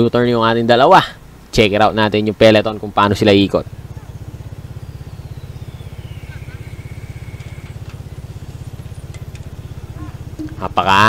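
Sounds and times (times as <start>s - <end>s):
motorcycle engine running: 2.7s - 11.0s.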